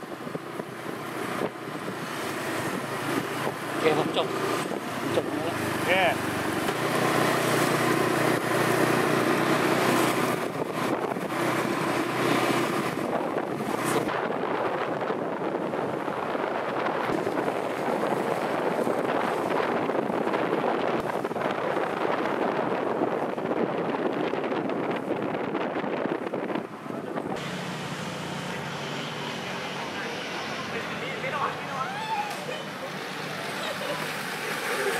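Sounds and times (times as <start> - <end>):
wind on microphone: 0.0 - 27.5
wheels rolling on asphalt: 0.0 - 34.9.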